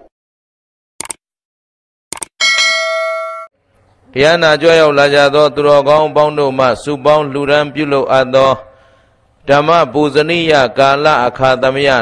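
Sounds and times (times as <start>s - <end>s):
bright bell ding: 2.4s - 3.6s.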